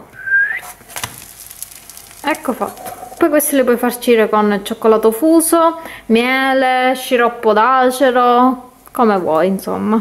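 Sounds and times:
rising whistle-like squeak: 0.2s - 0.7s
small crackles: 0.5s - 3.8s
batter sizzling in frying pan: 0.6s - 3.8s.

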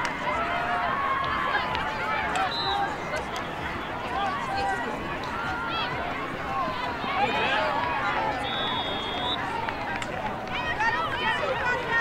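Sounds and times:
many voices calling and talking: 0.0s - 12.0s
whistle blast: 2.5s - 2.9s, 8.4s - 9.5s.

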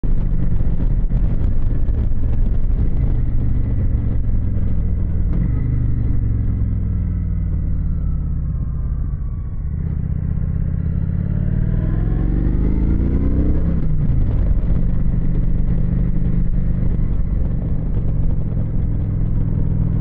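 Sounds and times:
wind noise: 0.0s - 7.8s, 9.2s - 20.0s
motorcycle engine accelerating: 0.0s - 20.0s.

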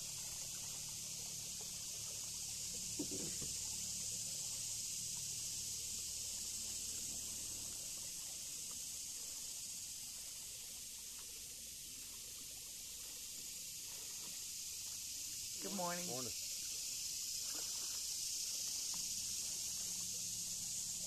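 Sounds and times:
river hiss: 0.0s - 21.0s.

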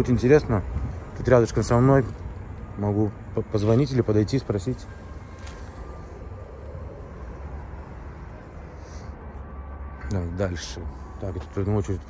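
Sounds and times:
distant engine rumble: 0.0s - 12.0s.

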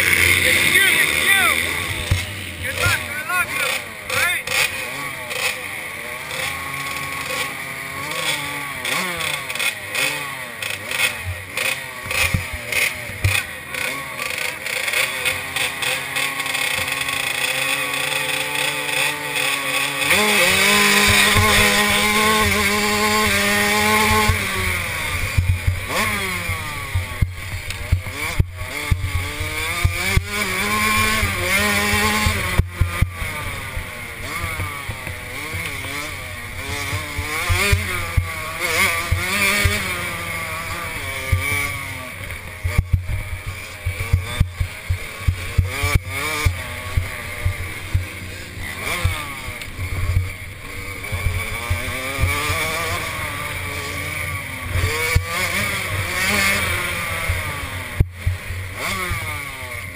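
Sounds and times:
motocross bike engines revving: 0.0s - 59.9s
motorbike accelerating hard: 0.0s - 59.9s.

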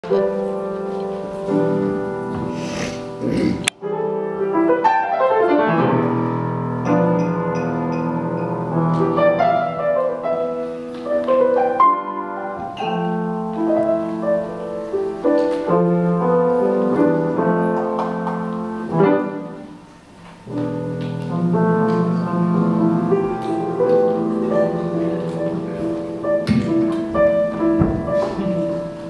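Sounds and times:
grand piano playing: 0.0s - 29.0s.

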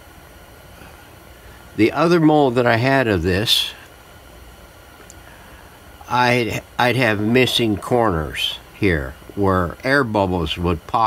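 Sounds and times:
room hiss: 0.0s - 11.0s.

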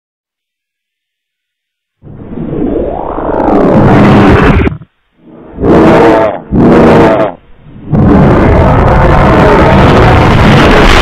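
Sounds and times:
distorted roar-like logo bursts: 2.0s - 11.0s.

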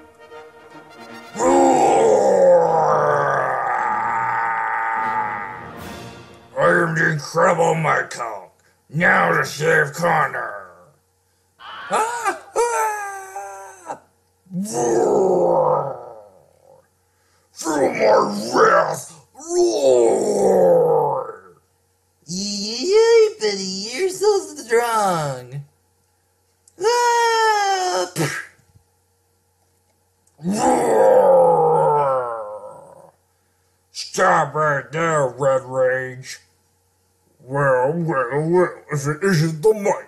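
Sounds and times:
man roaring like a monster: 1.4s - 5.8s, 11.6s - 16.8s, 17.6s - 21.6s, 30.4s - 33.2s
man yelling: 1.4s - 5.8s, 6.6s - 7.8s, 11.6s - 16.1s, 17.6s - 21.4s, 22.3s - 25.5s, 26.8s - 28.5s.

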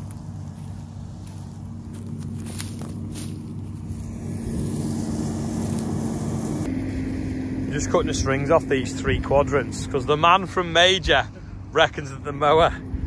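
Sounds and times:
tractor engine and mower: 0.0s - 13.0s.

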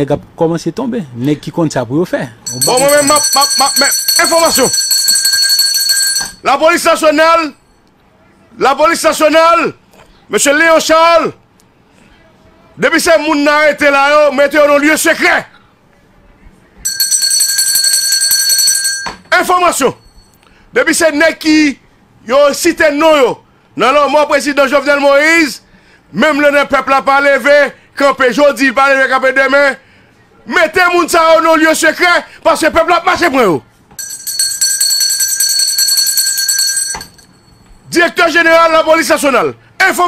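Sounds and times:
electronic ringing alert tone: 2.5s - 6.4s, 16.8s - 19.2s, 34.0s - 37.8s.

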